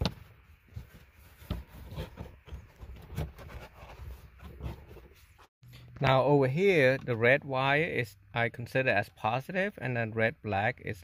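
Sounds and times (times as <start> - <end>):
gloved hand rustling and scraping: 0.0 - 5.6.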